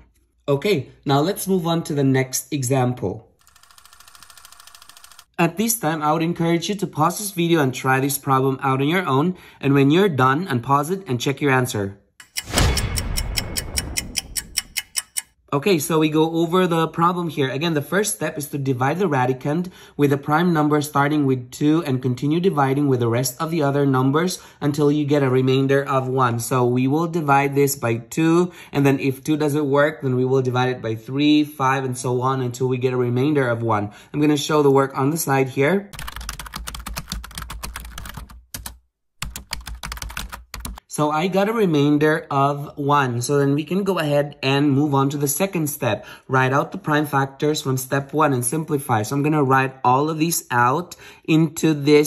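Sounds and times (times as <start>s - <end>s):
rapid clock-like ticking: 12.2s - 15.4s.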